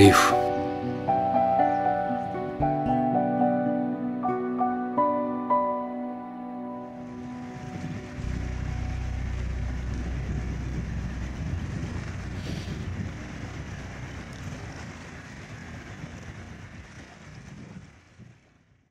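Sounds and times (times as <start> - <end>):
background music: 0.0 - 14.6
deep rumble: 7.0 - 18.5
wind buffeting microphone: 7.2 - 18.8
choppy water: 7.5 - 18.2.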